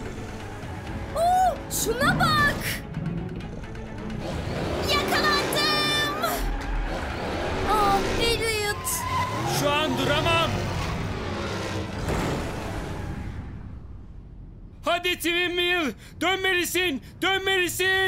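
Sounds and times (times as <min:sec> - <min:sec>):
sped-up car engines: 0:00.0 - 0:01.1, 0:03.0 - 0:14.2
tyres squealing: 0:04.8 - 0:11.0.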